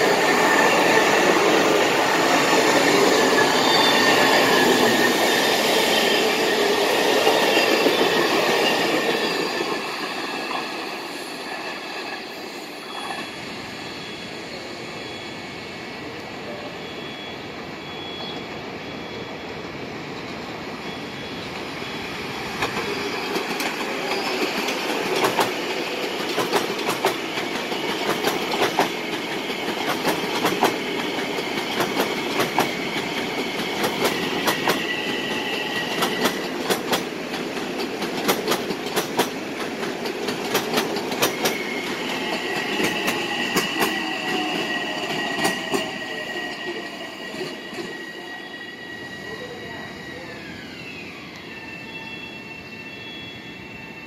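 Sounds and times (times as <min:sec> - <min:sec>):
high-pitched wheel squeal: 0:00.2 - 0:15.9, 0:32.6 - 0:36.6, 0:41.2 - 0:54.0
train wheels clicking over rail joints: 0:22.5 - 0:46.7.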